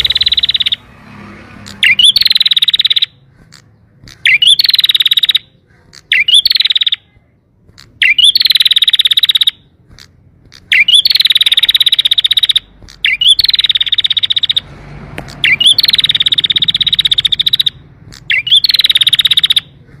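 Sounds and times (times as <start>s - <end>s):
canary singing in trills: 0.0s - 20.0s.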